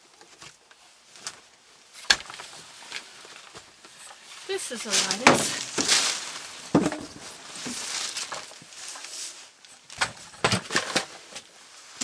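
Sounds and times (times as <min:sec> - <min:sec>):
debris rustling: 0:00.3 - 0:12.0
wooden sticks knocking: 0:06.7 - 0:07.2.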